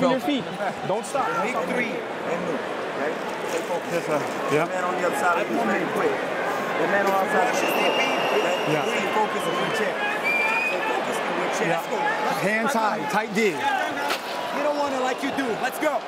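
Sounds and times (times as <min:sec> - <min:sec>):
men talking at once: 0:00.0 - 0:16.0
murmur of arena crowd: 0:00.0 - 0:16.0.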